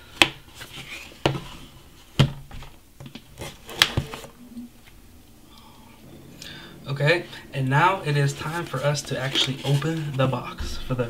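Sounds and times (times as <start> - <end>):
handling rustle: 8.3 - 11.0.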